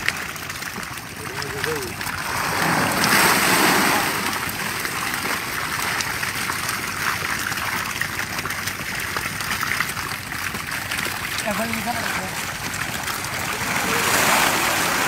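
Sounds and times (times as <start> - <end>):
water splashing and dripping: 0.0 - 15.0.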